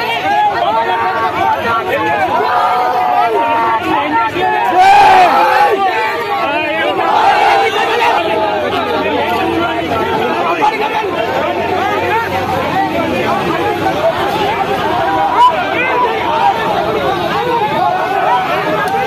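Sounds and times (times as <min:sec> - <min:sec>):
crowd shouting: 0:00.0 - 0:19.0.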